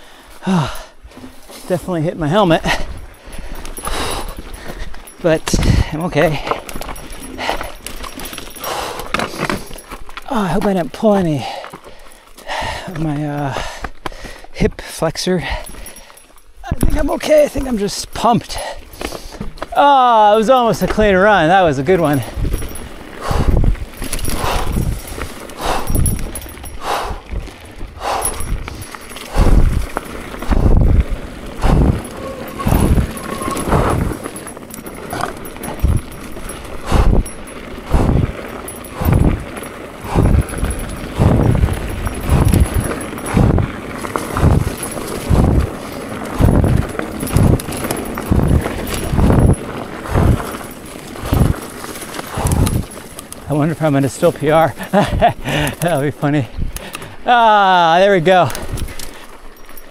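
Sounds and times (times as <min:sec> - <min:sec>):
trail noise: 0:00.0 - 0:59.9.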